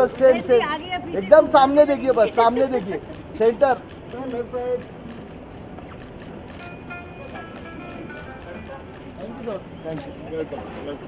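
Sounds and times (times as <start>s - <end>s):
outdoor background noise: 0.0s - 11.0s
faint distant voices: 5.8s - 11.0s.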